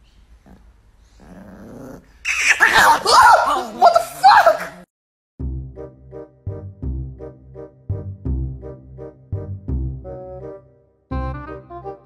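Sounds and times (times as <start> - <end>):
small dog growling: 0.4 - 3.0
small dog snarling and yapping: 0.4 - 3.6.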